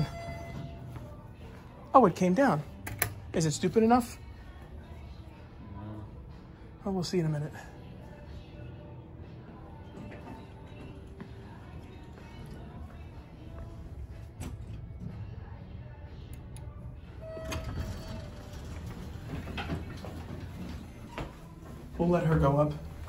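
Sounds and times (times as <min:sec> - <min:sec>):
elevator doors sliding: 0:00.0 - 0:01.0, 0:16.3 - 0:23.0.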